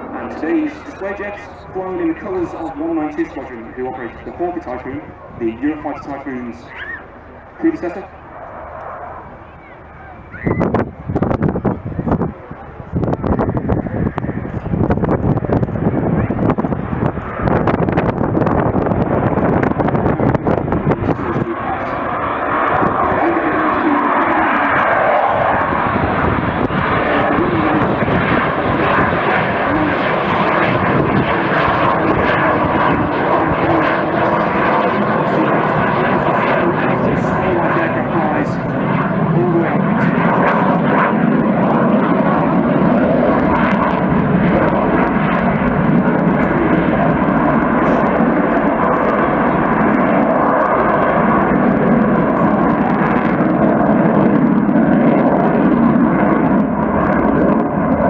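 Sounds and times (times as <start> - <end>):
jet engines roaring: 0.0 - 58.0.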